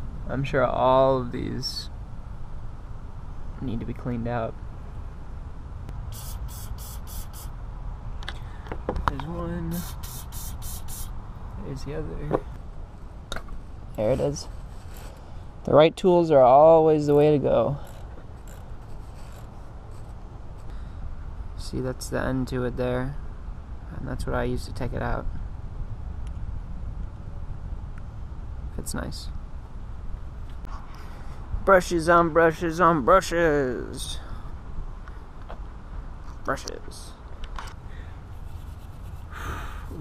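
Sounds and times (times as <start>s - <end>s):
low steady rumble: 0.0s - 40.0s
short scrape: 6.1s - 7.5s, 14.0s - 15.3s
metal-on-metal rubbing: 17.8s - 20.2s.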